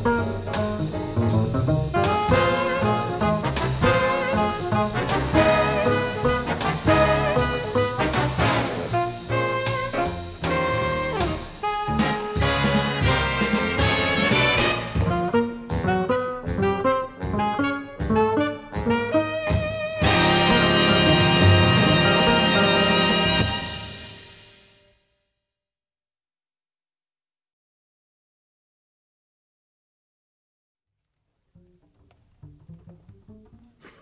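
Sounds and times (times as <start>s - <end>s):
double bass plucked softly: 0.0s - 8.1s, 31.5s - 33.9s
big band jazz horns: 0.0s - 24.8s.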